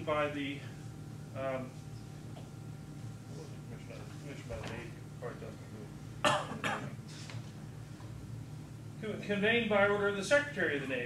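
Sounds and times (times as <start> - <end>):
person coughing: 6.2 - 7.0.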